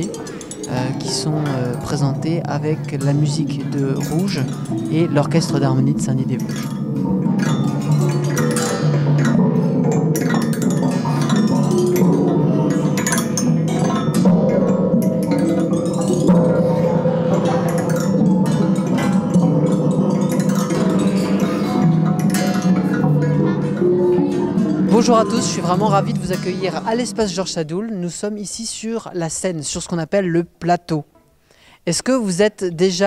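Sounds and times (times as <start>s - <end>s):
sustained low ringing tones: 0.0s - 29.0s.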